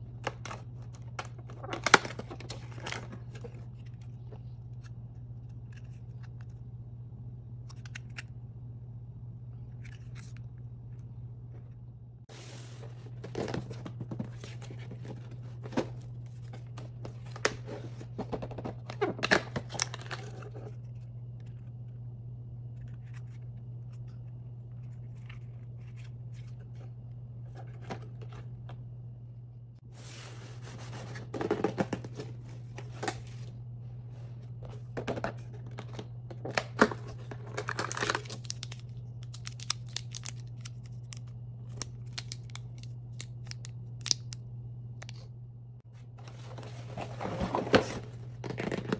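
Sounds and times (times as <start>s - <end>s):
steady low hum: 0.0s - 48.9s.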